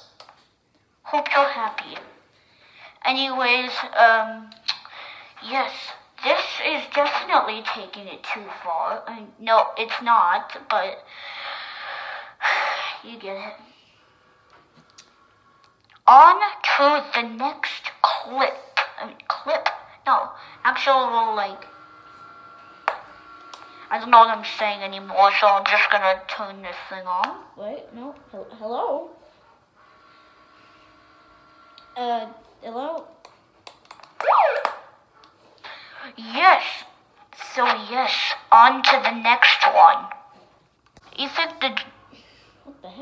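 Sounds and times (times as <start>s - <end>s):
megaphone siren whoop: 34.2s - 34.8s.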